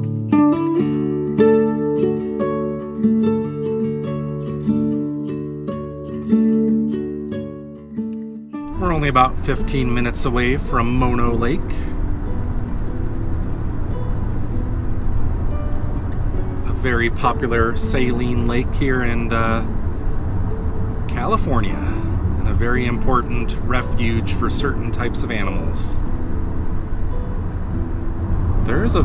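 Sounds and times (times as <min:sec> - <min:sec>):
faint background music: 0:08.6 - 0:29.0
road and tyre noise in car: 0:08.7 - 0:29.0.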